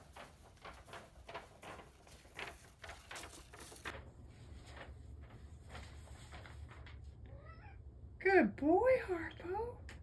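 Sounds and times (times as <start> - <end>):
paper poster rustling on carpet: 0.0 - 7.3.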